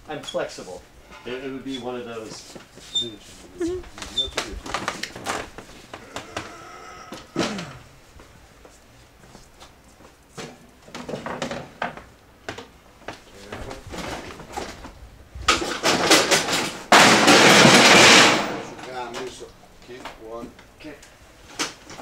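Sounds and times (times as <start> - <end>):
crash of objects tumbling: 13.8 - 19.0
shop goods clattering: 15.5 - 19.3.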